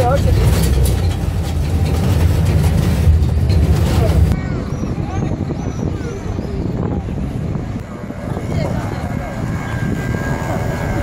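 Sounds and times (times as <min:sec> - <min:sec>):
people talking: 0:00.0 - 0:01.0, 0:03.8 - 0:07.4, 0:08.1 - 0:10.0.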